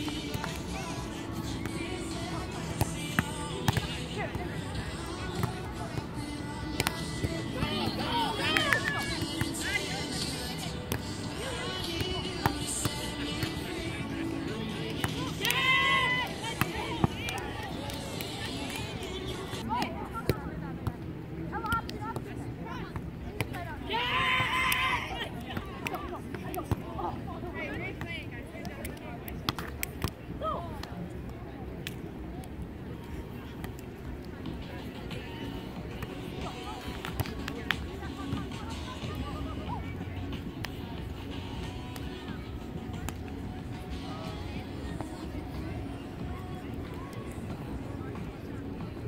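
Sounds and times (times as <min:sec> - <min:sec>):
music: 0:00.0 - 0:19.7, 0:34.4 - 0:49.0
faint voices: 0:00.0 - 0:49.0
people chatting: 0:00.0 - 0:49.0.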